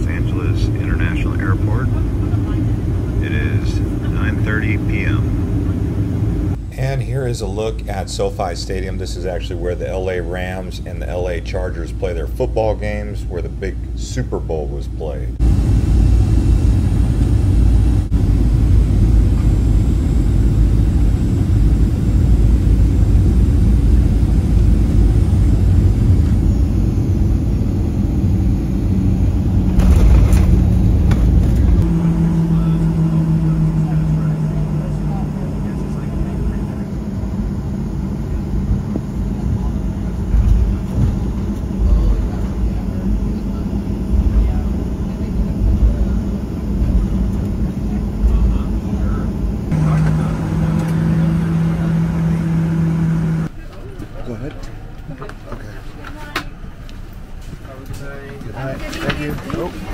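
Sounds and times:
airliner landing rumble: 0.0s - 59.9s
jet engine hum: 0.0s - 59.9s.

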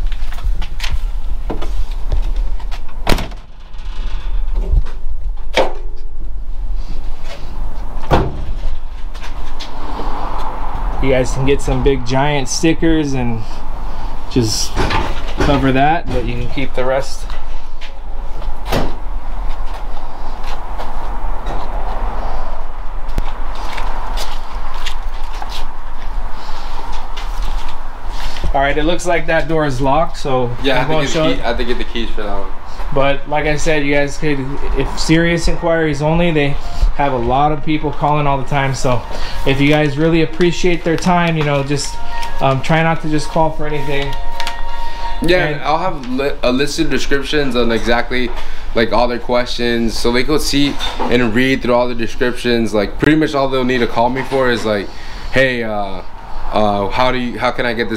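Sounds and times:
low handling rumble: 0.0s - 44.1s
clunks and knocks: 14.7s - 16.5s.

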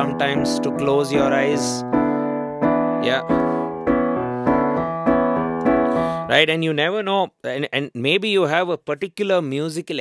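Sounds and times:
digital piano playing rock exercise: 0.0s - 7.3s.

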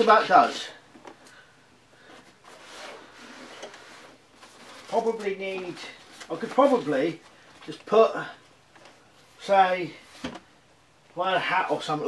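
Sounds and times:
fabric bag rustling: 2.0s - 7.5s.

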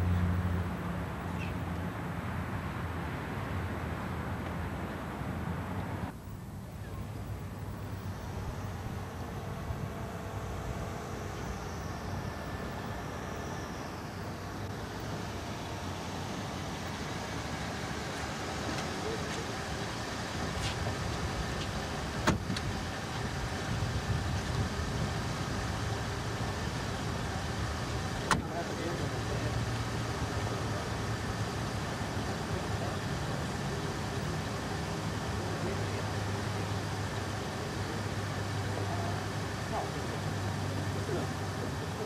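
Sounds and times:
car engine idling: 0.0s - 42.0s
car door clicks: 21.6s - 22.7s, 28.3s - 28.5s.

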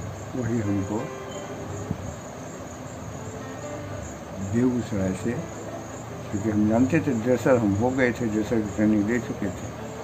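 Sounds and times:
insect chirping: 0.0s - 10.0s.

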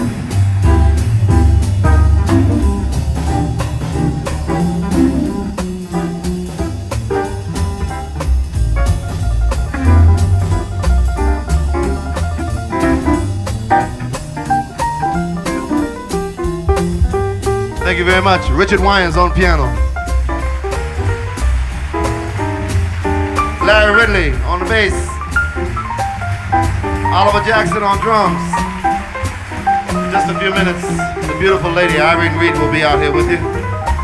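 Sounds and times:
bass line: 0.0s - 34.0s
drum kit with cymbals: 0.0s - 34.0s
guitar: 0.0s - 34.0s
piano: 0.0s - 34.0s.

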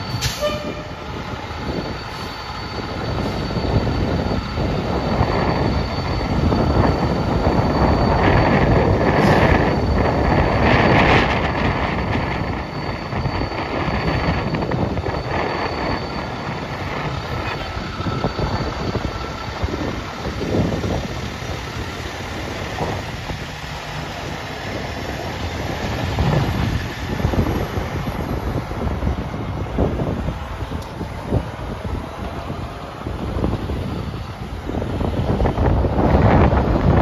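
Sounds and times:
wind buffeting microphone: 0.0s - 37.0s
truck engine driving away: 16.2s - 35.4s.

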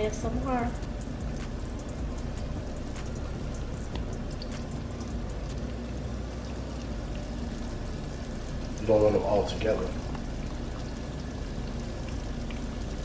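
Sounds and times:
chicken frying in hot oil: 0.0s - 13.0s.

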